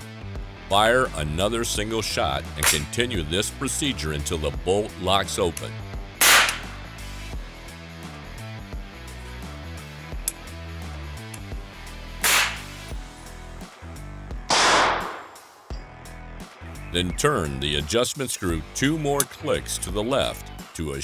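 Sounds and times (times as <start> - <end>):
background music: 0.0 - 21.0
rifle shots: 6.2 - 6.8, 12.2 - 12.7, 14.5 - 15.5.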